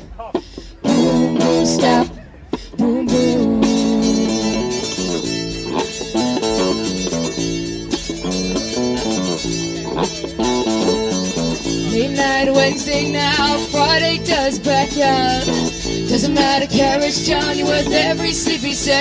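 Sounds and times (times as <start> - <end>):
acoustic guitar strumming: 0.0 - 19.0
electric bass guitar: 0.0 - 19.0.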